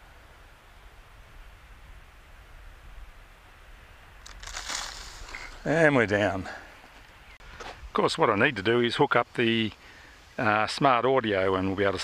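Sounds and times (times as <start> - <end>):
crunching rustle in dry grass: 4.2 - 7.0.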